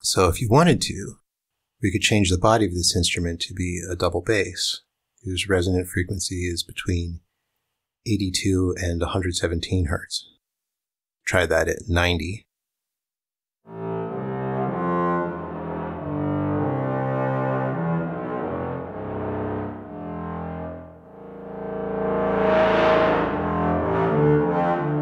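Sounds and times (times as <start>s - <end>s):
synthesized bowed-string melody: 13.7s - 25.0s.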